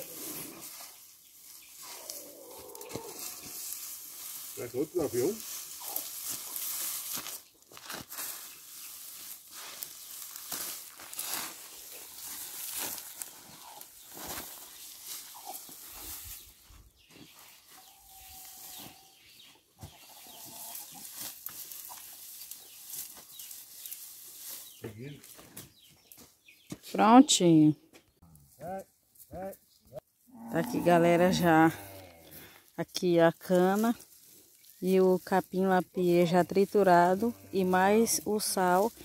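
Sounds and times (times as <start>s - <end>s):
dry forage rustling and crackling: 0.0s - 27.2s, 28.3s - 39.0s.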